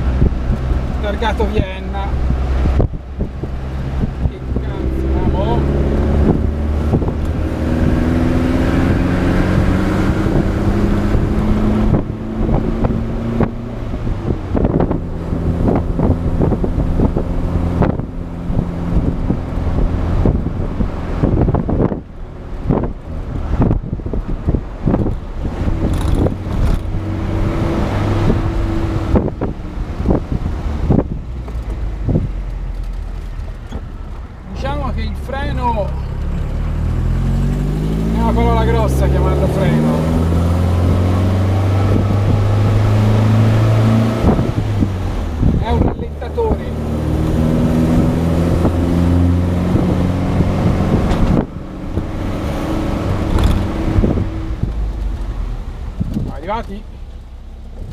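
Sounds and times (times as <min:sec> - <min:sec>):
car engine revving: 0:00.0 - 0:57.9.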